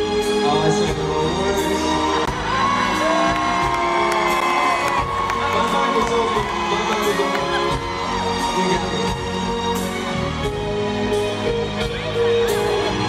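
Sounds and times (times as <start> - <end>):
live pop band music: 0.0 - 13.0
audience cheering: 2.1 - 9.3.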